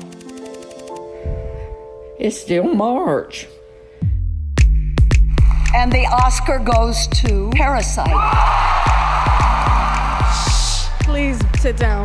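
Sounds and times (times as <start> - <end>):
music with steady beat: 4.0 - 12.0
kick drum strikes: 6.1 - 12.0.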